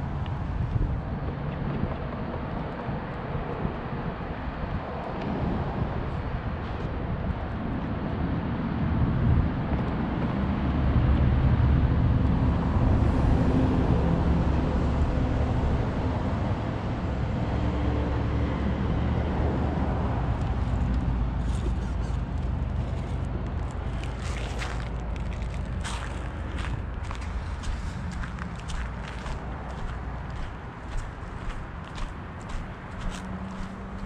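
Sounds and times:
low outdoor rumble: 5.8 - 34.0.

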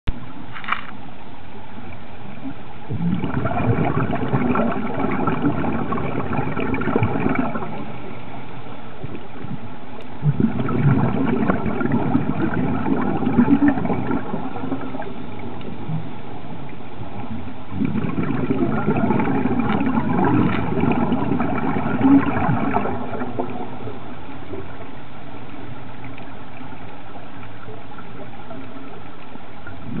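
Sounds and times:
low gurgling rumble: 0.1 - 30.0
underwater crackle: 0.1 - 30.0
faint ticks: 25.4 - 29.8.

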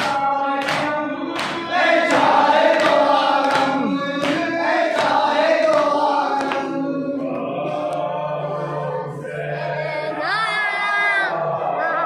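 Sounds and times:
hands slapping chests: 0.0 - 6.7
men chanting in unison: 0.0 - 12.0.

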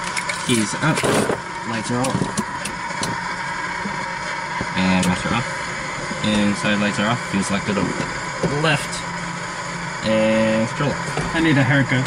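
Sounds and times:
airplane engine idling: 0.0 - 12.0.

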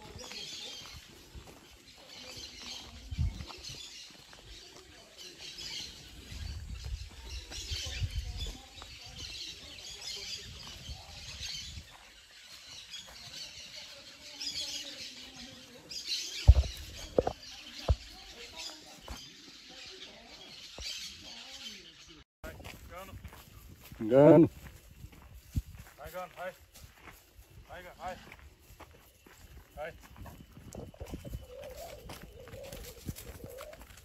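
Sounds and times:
birds chirping: 0.0 - 34.0.

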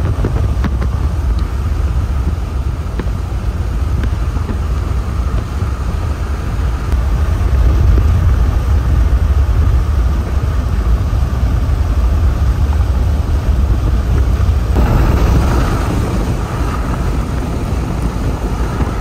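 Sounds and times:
car road and engine noise: 0.0 - 19.0.

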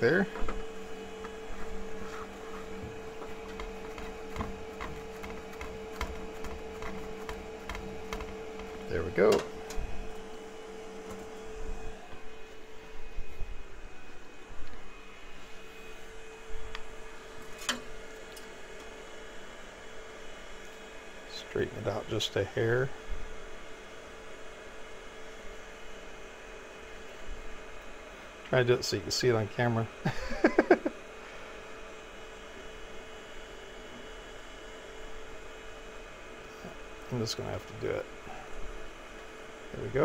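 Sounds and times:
three d printer humming: 0.0 - 40.0.

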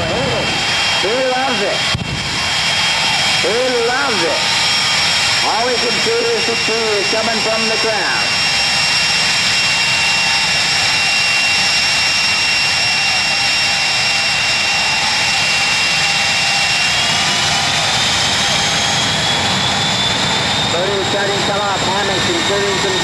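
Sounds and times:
high turbine whine: 0.0 - 23.0
jet turbine engines roaring: 0.0 - 23.0.

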